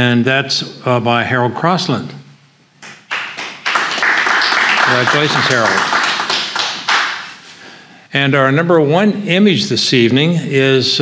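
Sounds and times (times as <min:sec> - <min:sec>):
small audience clapping: 0:02.8 - 0:07.4.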